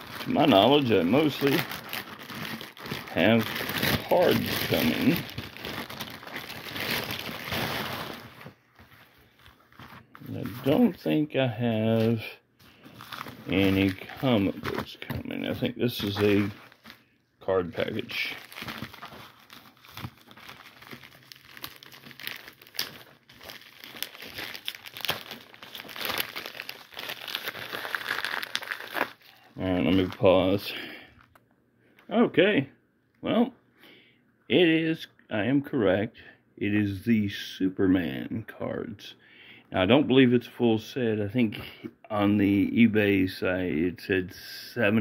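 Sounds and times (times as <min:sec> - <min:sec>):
padded envelope crinkling: 0:00.0 - 0:30.6.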